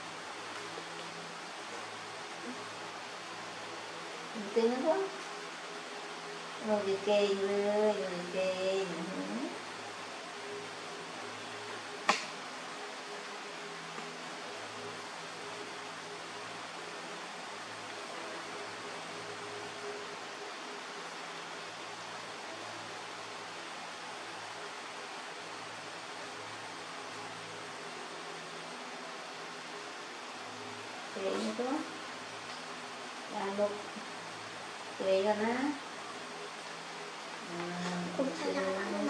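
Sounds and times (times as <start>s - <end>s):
faint low hum: 0.0s - 39.0s
room noise hiss: 0.0s - 39.0s
sharp click: 12.1s - 12.4s.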